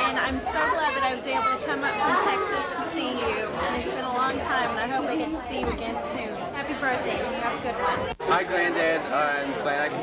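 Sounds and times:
room chatter: 0:00.0 - 0:10.0.

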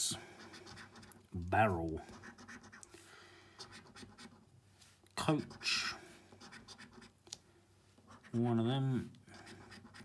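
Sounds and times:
coin scratching a scratchcard: 0:00.4 - 0:01.2, 0:02.1 - 0:02.9, 0:03.6 - 0:04.4, 0:06.4 - 0:07.1, 0:09.4 - 0:10.0.

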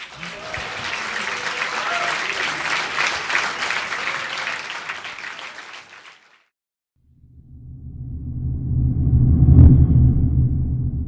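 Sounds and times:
deep rumbling swell: 0:07.2 - 0:11.0.

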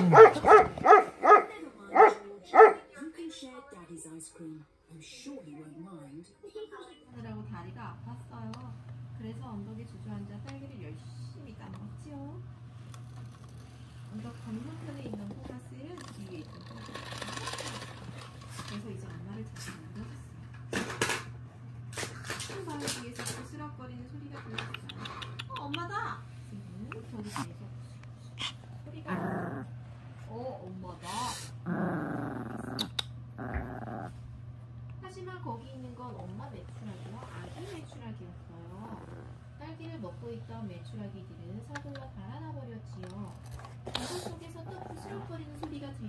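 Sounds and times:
small dog barking: 0:00.0 - 0:02.9.

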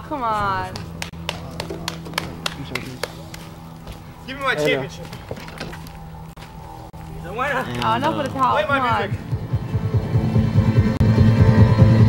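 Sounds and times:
steady low hum: 0:00.0 - 0:12.0
sharp hand claps: 0:00.7 - 0:03.5.

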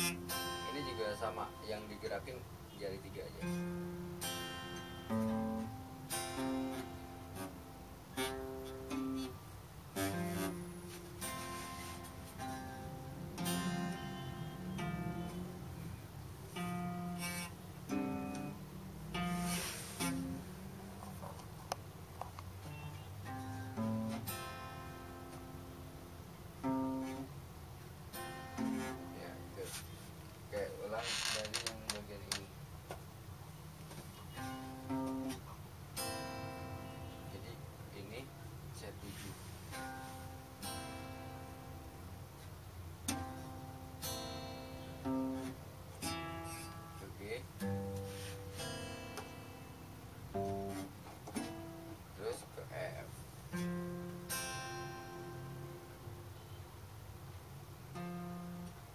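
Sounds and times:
classical guitar chords strummed: 0:00.0 - 0:31.0, 0:31.8 - 0:58.9.

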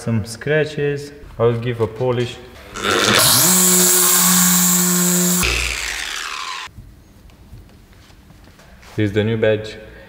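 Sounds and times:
electric polisher whirring down: 0:02.7 - 0:06.7.

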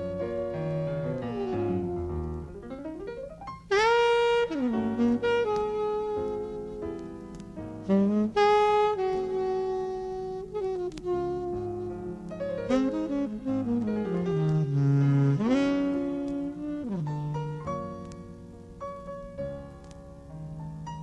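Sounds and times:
jazz saxophone melody: 0:00.0 - 0:19.4.

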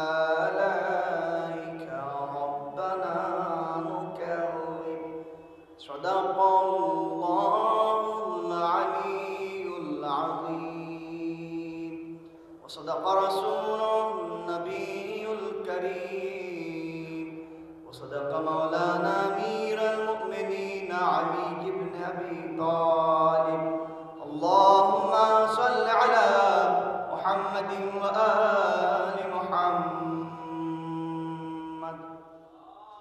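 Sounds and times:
man chanting through a microphone: 0:00.0 - 0:32.3.

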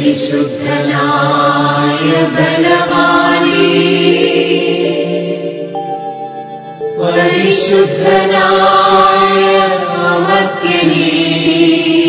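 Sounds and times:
devotional song slow chant: 0:00.0 - 0:12.0.

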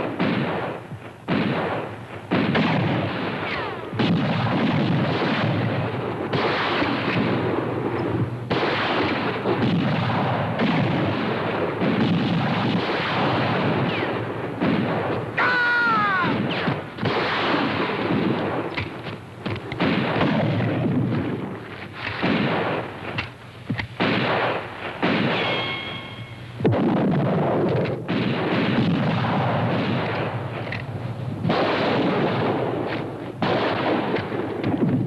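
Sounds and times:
rifles and revolvers firing: 0:00.0 - 0:35.0.

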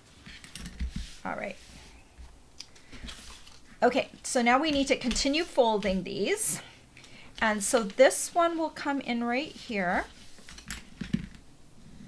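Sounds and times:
paper handling: 0:02.8 - 0:03.7.

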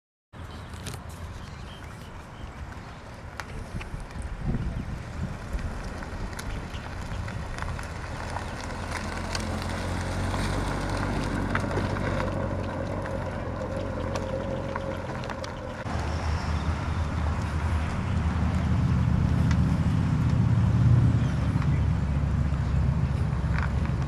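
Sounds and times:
car engine rumbling: 0:00.4 - 0:24.0.

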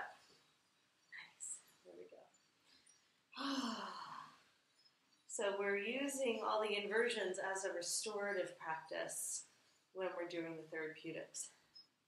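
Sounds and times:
person sighing: 0:03.4 - 0:04.4.

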